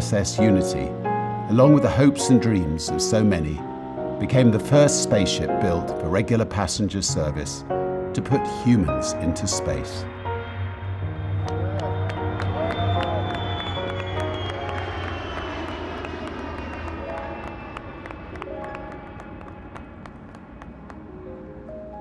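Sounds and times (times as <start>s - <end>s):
background music: 0.0s - 22.0s
jet engines rumbling and whining: 13.8s - 22.0s.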